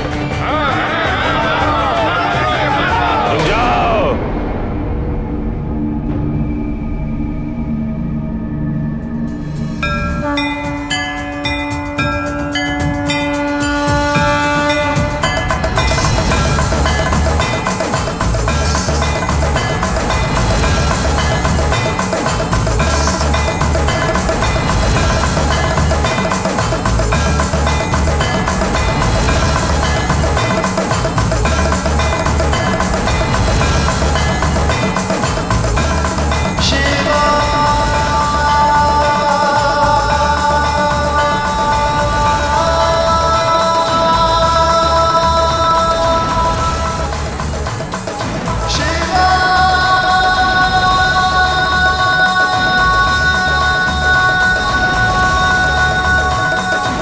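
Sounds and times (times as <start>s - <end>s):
driving drum rhythm: 0.0s - 6.1s, 9.8s - 57.0s
sustained instrument lines: 0.0s - 57.0s
low drone note: 2.8s - 11.5s, 14.0s - 47.8s.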